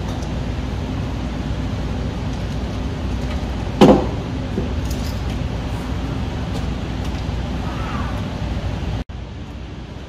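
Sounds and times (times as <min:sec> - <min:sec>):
steady low rumbling: 0:00.0 - 0:10.0.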